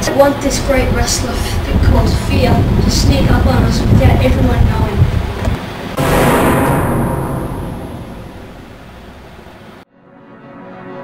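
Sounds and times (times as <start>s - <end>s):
loud crash: 6.0s - 9.8s.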